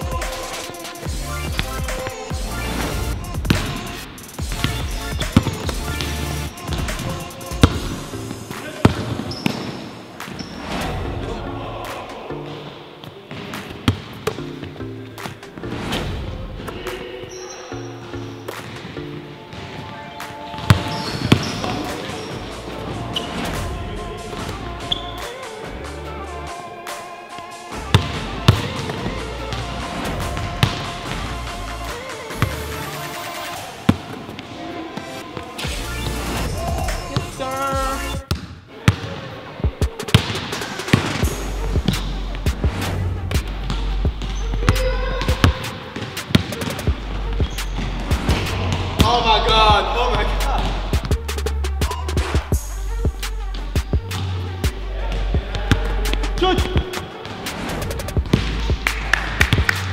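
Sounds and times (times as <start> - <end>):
background music: 0.0 - 59.9
basketball bouncing on hardwood: 4.6 - 5.8, 7.6 - 7.9.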